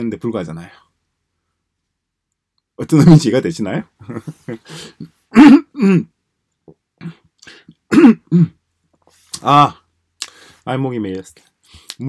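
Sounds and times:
man clearing his throat: 5.0s - 6.2s, 7.0s - 8.6s.

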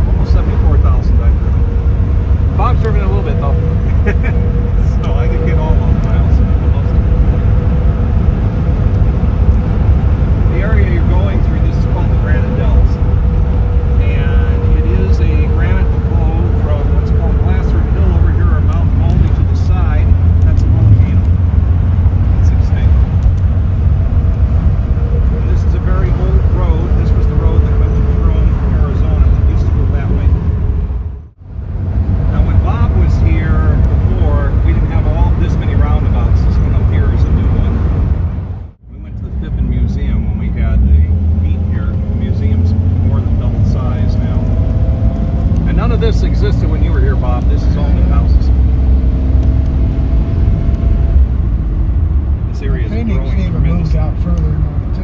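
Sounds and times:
car engine and road rumble: 0.0s - 55.0s.

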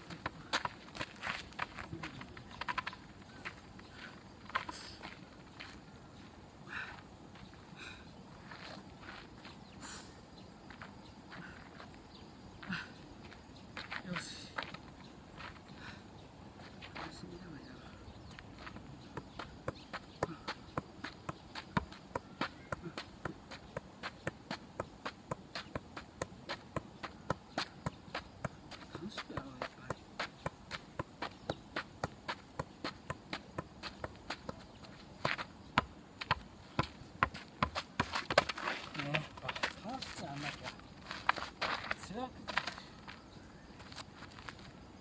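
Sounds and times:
football taps on foot: 18.6s - 38.7s.

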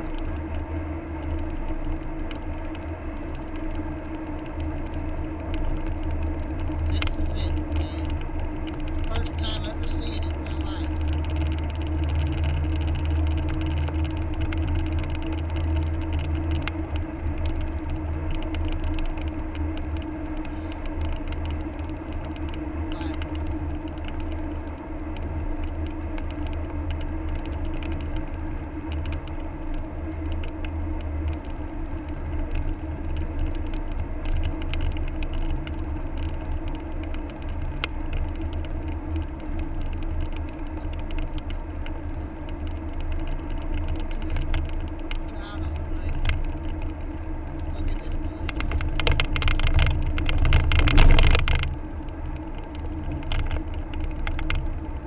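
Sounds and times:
car cabin road and engine rumble: 0.0s - 55.0s.

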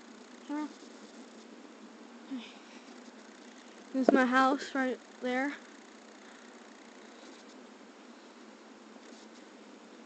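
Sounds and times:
faint outdoor hiss: 0.0s - 10.0s
person speaking: 3.9s - 5.6s.

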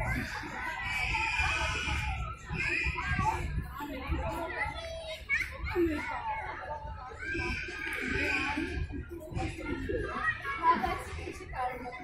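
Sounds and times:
children's high shouts: 0.0s - 3.7s, 4.7s - 11.0s
children calling and chattering: 0.0s - 12.0s.

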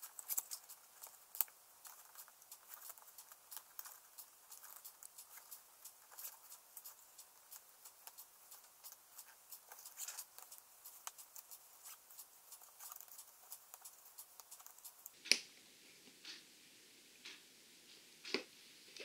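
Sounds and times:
tape crackling: 0.0s - 15.4s.

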